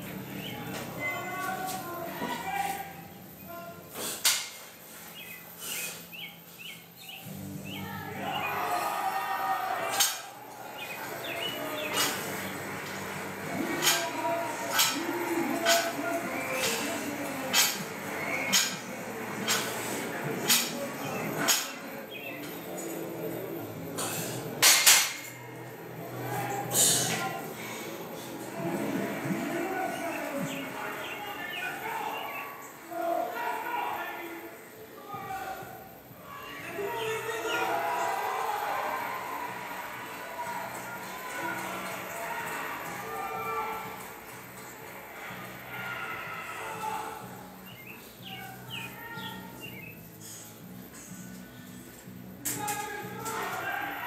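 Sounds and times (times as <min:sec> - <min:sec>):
background music: 0:37.6 - 0:54.0.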